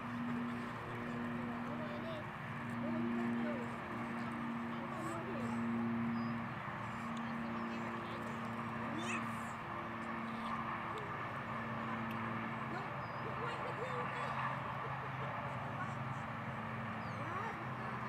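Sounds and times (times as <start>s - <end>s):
distant chatter of people: 0.0s - 18.0s
steady low hum: 0.0s - 18.0s.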